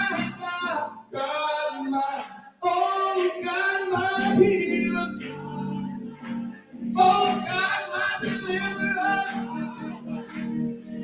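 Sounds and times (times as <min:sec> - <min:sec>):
electronic keyboard chords: 0:00.0 - 0:01.3, 0:03.2 - 0:11.0
gospel singing: 0:00.0 - 0:11.0.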